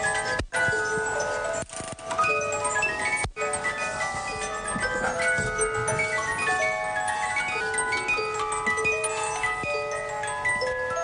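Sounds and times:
music box melody: 0.0s - 11.0s.

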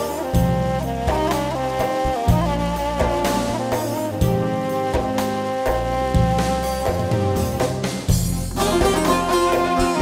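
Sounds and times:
instrumental folk band: 0.0s - 10.0s
steady bass line: 0.0s - 10.0s.

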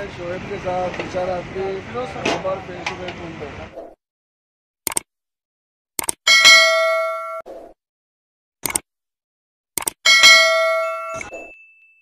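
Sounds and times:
metallic bell ding: 6.3s - 7.4s, 10.1s - 12.0s.

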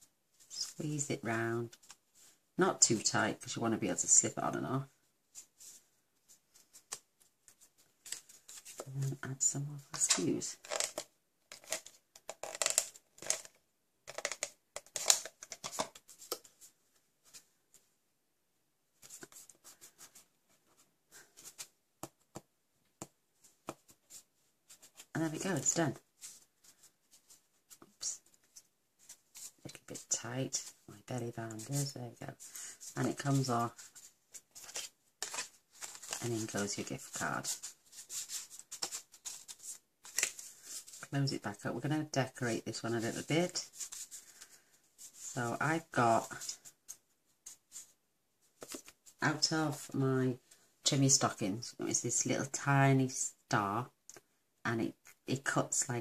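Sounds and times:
paper and card rustling: 5.3s - 9.2s, 9.9s - 17.8s, 19.0s - 22.4s, 23.4s - 41.2s, 42.3s - 49.5s
card stock rustling: 10.1s - 17.4s, 31.6s - 41.1s.

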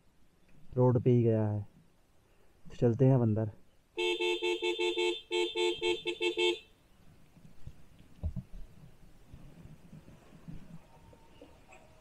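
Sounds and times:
motorcycle horn beeps: 4.0s - 6.7s.

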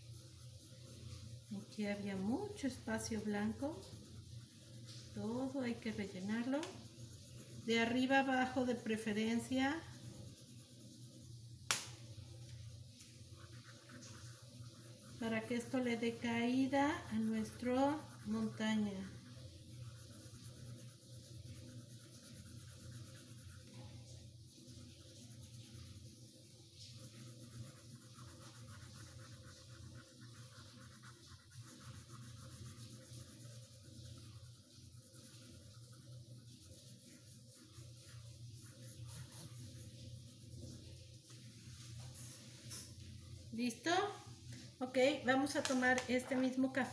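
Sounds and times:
pencil scratching on paper: 0.0s - 11.5s, 13.3s - 41.0s.

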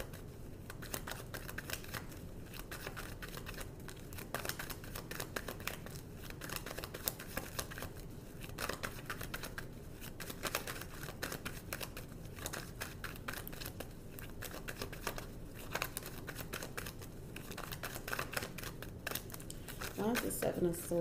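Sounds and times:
cards being shuffled: 0.0s - 20.6s.

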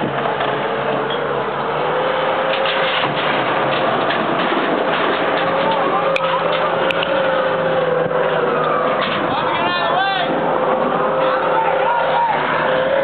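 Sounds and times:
street traffic rush: 0.0s - 13.0s.

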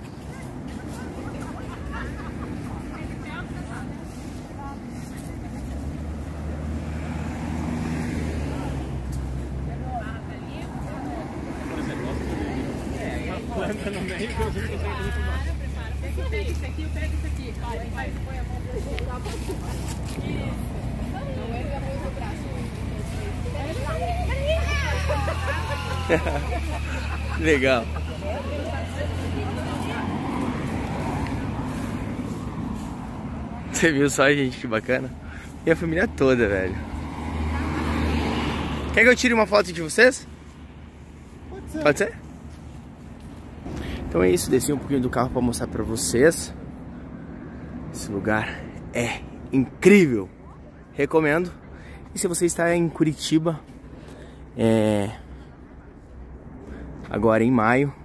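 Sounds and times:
low traffic rumble: 0.0s - 58.0s
vehicle engine humming: 0.0s - 58.0s
faint voices: 8.3s - 35.8s.

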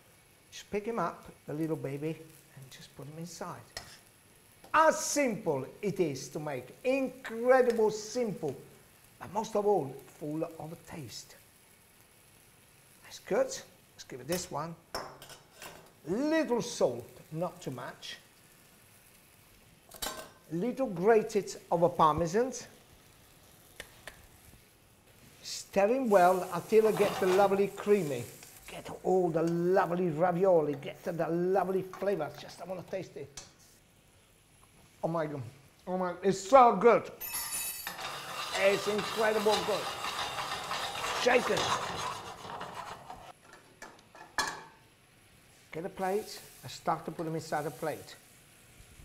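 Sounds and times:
pasta simmering in a pan: 0.0s - 14.1s, 14.8s - 29.1s, 37.8s - 43.5s, 44.6s - 49.0s
frying pan shaken on hob: 26.3s - 28.0s, 37.8s - 43.3s.

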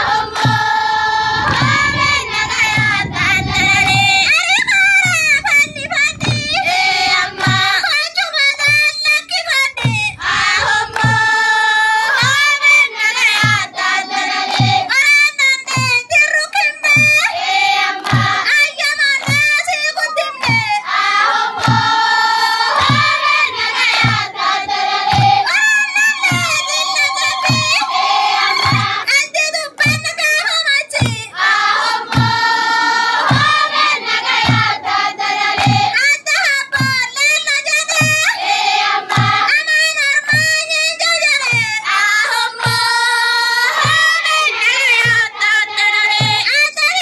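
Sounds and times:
low thud keeping beat: 0.0s - 38.4s, 39.0s - 46.5s
low rhythmic thumps: 0.0s - 46.6s
girls singing together: 0.0s - 47.0s.

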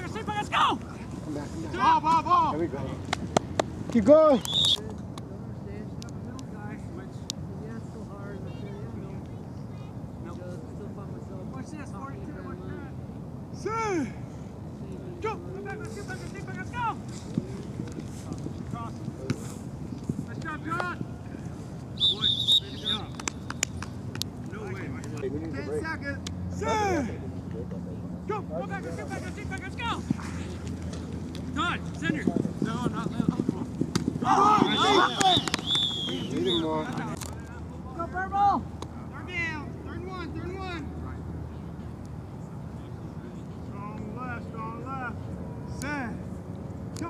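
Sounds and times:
players shouting: 0.0s - 2.9s, 22.0s - 23.6s, 25.9s - 27.3s, 28.2s - 37.2s
short shrill whistle: 34.7s - 36.6s.

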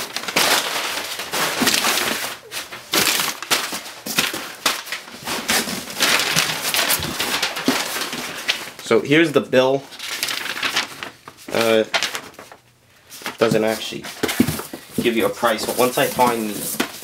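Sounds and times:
packing paper crinkling: 0.0s - 8.9s, 9.7s - 17.0s.

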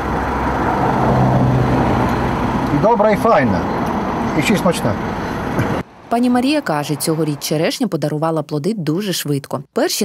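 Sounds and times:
vehicle engine hum: 0.0s - 7.7s.

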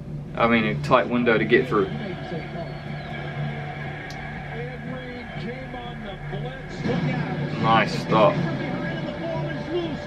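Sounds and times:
background music: 0.0s - 10.0s
steady low hum: 0.0s - 10.0s
faint voices: 1.3s - 10.0s.

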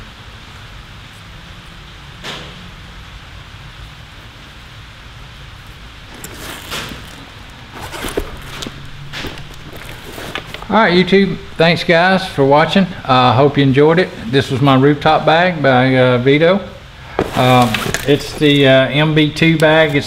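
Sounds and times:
background hiss and hum: 0.0s - 20.0s
tool bag rustling: 6.0s - 11.6s, 17.1s - 18.9s.

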